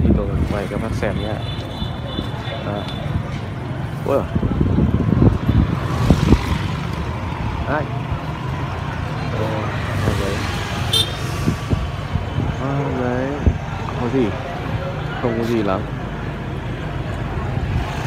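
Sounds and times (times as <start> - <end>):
motorbike engines passing: 0.0 - 18.0.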